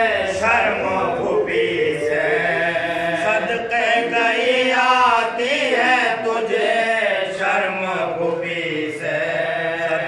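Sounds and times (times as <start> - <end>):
lead reciter: 0.0 - 10.0
men chanting an elegy: 0.0 - 10.0.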